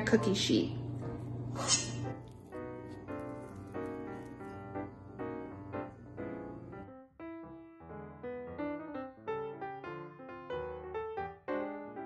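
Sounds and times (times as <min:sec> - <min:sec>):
piano chords: 0:00.0 - 0:12.0.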